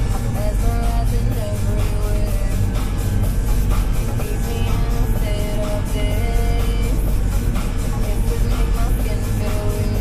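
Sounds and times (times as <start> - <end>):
music from radio: 0.0 - 10.0
tractor diesel engine drone: 0.0 - 10.0.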